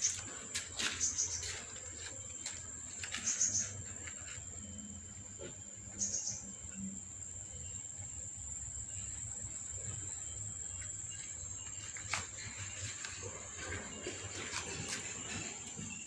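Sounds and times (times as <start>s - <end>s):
high-pitched insect trill: 0.0s - 16.0s.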